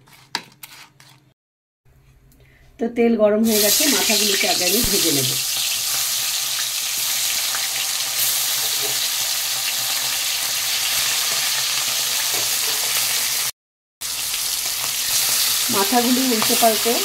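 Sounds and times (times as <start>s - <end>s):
fish frying in hot oil: 3.5s - 17.0s.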